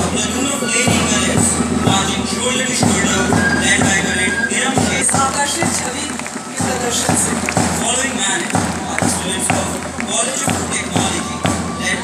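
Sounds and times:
marching band drum beat: 0.0 - 12.0.

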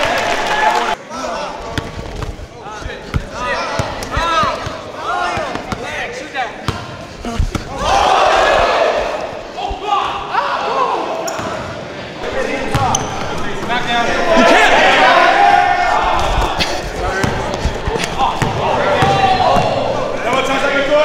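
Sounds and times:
crowd and player voices: 0.0 - 21.0
sneakers squeaking: 1.6 - 10.3, 11.2 - 15.1, 15.8 - 20.6
basketball bouncing on gym floor: 17.2 - 19.8.

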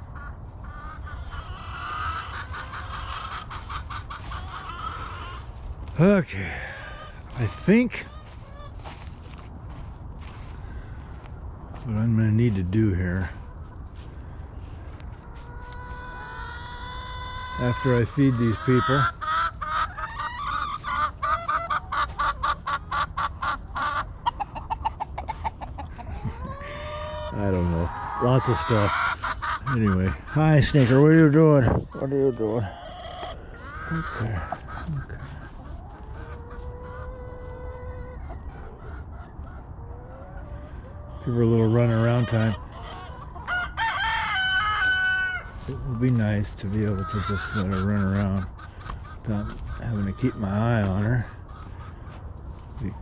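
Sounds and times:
chickens clucking: 0.0 - 53.0
rooster crowing: 43.4 - 45.6.

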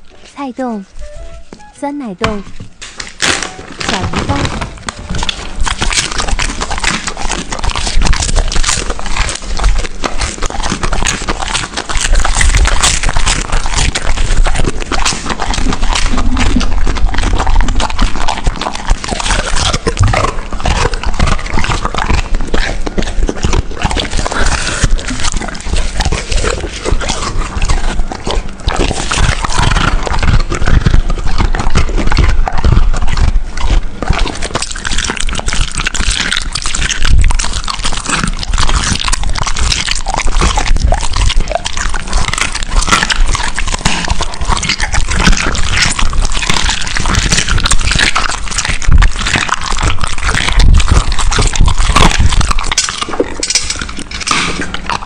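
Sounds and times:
dog chewing meat and bone: 2.3 - 55.0.

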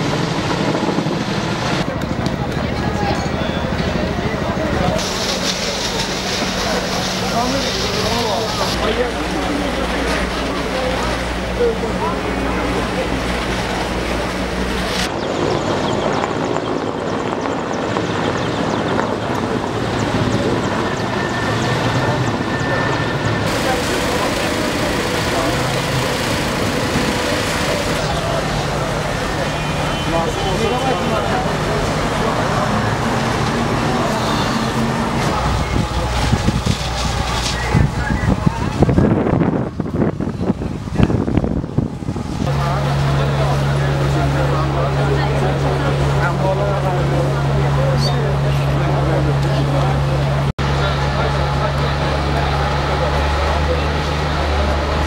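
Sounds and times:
crowd talking and calling out: 0.0 - 55.0
street and engine hum: 0.0 - 55.0.

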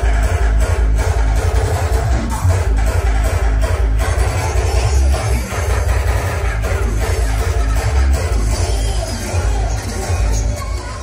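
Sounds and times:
bass-heavy dance music: 0.0 - 11.0.

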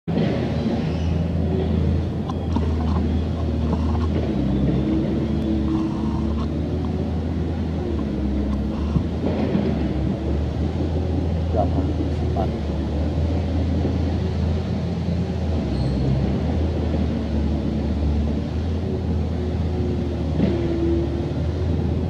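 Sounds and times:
low rumble: 0.1 - 22.0
faint voices: 1.4 - 14.7.

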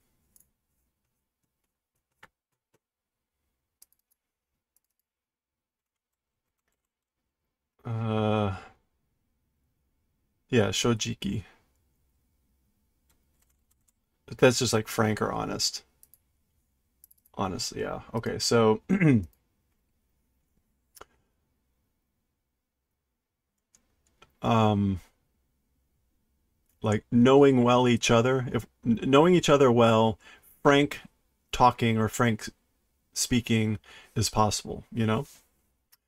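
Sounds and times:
faint computer keyboard clicks: 3.8 - 4.2
man speaking: 7.9 - 8.7, 10.5 - 11.6, 14.3 - 15.9, 17.4 - 19.3, 24.4 - 25.1, 26.8 - 32.6, 33.2 - 35.4.

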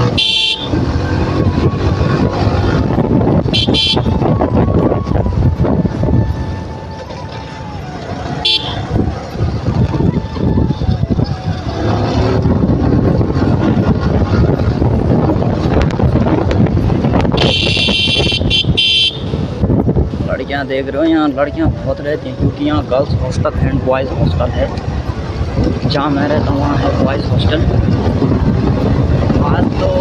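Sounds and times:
motorcycle horn beeps: 0.0 - 0.8, 3.5 - 4.2, 8.4 - 8.9, 17.4 - 19.4
motorcycle engine and wind rumble: 0.0 - 30.0.

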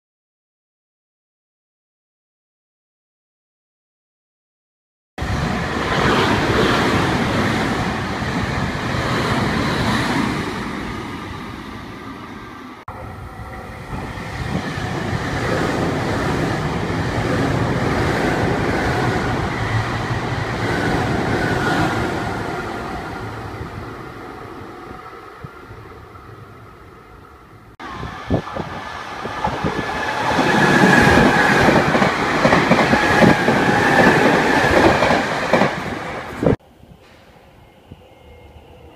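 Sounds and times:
electric train on rails: 5.2 - 38.9.

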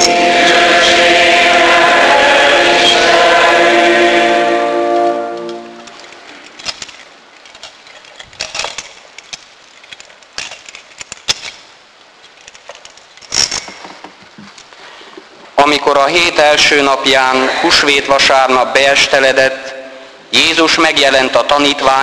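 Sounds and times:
voices singing held chant chord: 0.0 - 5.9.

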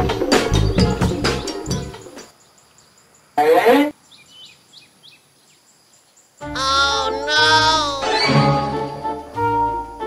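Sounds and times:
faint bird chirps: 2.3 - 8.3
voice-like sound rising in pitch: 6.6 - 8.8
comic musical sound effect: 6.6 - 8.9.

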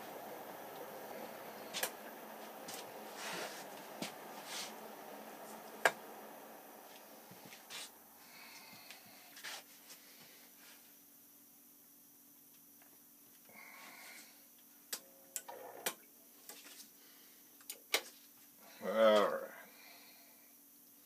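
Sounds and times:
faint low hum: 0.0 - 21.0.

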